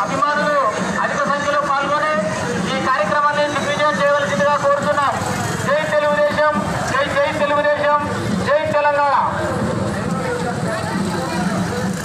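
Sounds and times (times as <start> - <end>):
voice over loudspeaker: 0.0 - 12.0.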